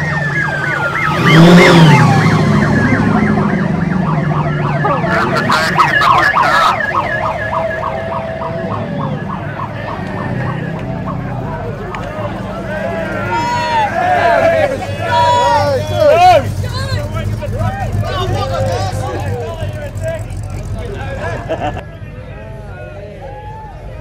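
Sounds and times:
electronic police siren: 0.0s - 11.6s
car engine running: 0.0s - 21.8s.

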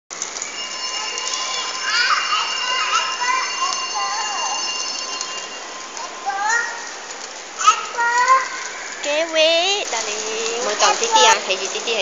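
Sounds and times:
outdoor background noise: 0.1s - 12.0s
thin high tones: 0.2s - 7.0s, 10.0s - 12.0s.

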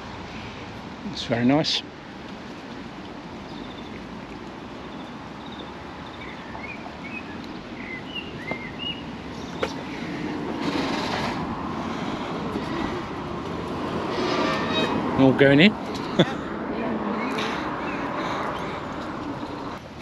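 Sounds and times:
road traffic passing: 0.0s - 20.0s
small birds chirping: 3.4s - 10.0s.

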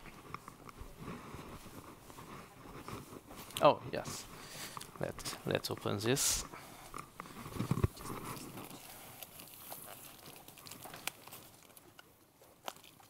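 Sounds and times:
wrapping rustling and crinkling: 0.0s - 13.0s.

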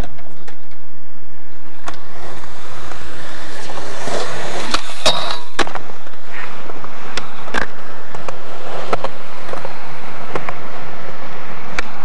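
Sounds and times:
skateboard wheels rolling on concrete: 0.0s - 12.0s
skateboard tail pop: 4.6s - 10.6s.

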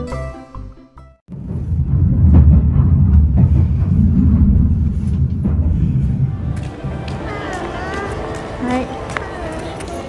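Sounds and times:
train rumbling on rails: 1.3s - 10.0s.

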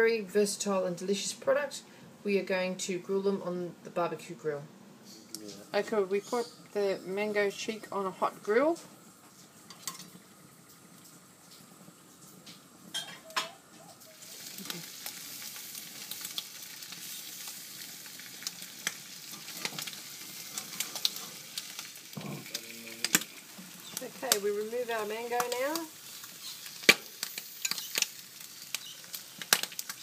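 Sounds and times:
food sizzling on grill: 5.0s - 30.0s.

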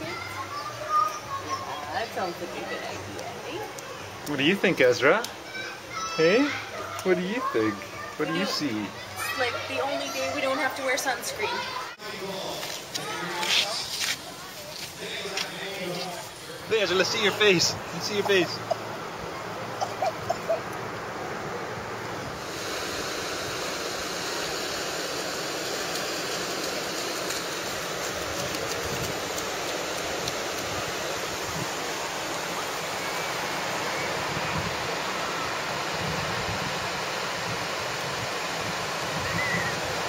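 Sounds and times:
surf washing onto beach: 0.0s - 40.0s.

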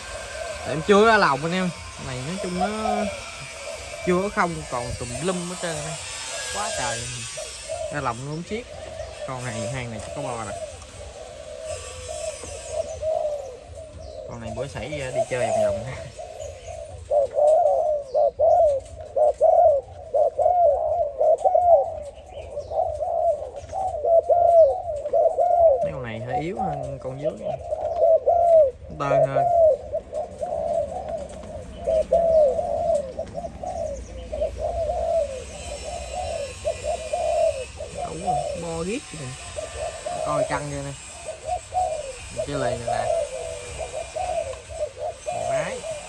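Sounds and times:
doves cooing: 0.0s - 46.0s.

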